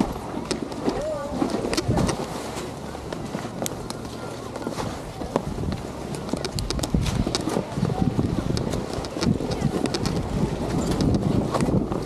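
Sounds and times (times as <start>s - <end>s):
sharp clicks and clatters: 3.1s - 12.0s.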